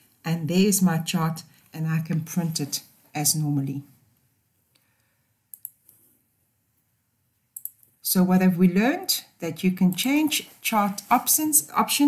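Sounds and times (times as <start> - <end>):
computer mouse clicks: 5.5 - 6.2, 7.5 - 8.0.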